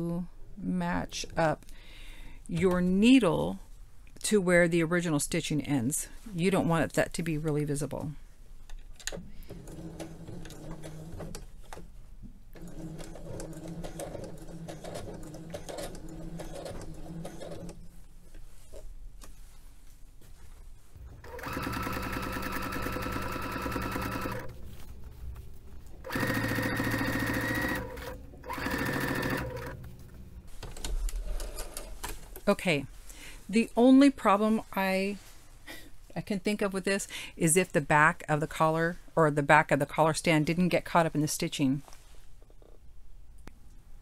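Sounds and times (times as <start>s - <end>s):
sewing machine stitching: 9.4s - 11.4s, 12.5s - 17.8s, 21.2s - 24.6s, 26.0s - 29.9s.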